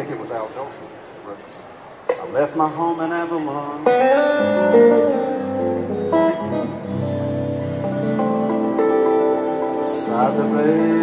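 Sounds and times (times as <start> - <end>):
fingerstyle guitar: 2.1 - 11.0.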